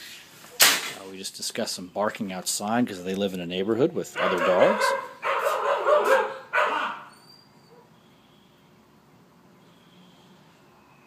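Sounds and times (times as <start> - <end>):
dog barking: 4.2 - 7.1.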